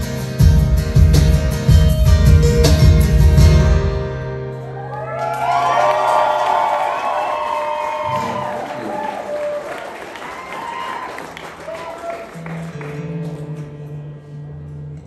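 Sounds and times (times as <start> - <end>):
whoops: 4.6 - 12.4
audience cheering and applauding: 4.6 - 13.6.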